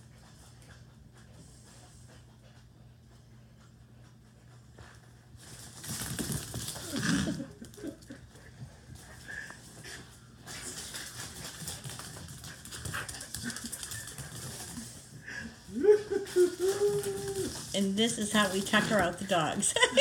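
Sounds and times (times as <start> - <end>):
dog claws skittering on tile: 4.8 - 8.2, 8.9 - 15.2, 16.5 - 19.3.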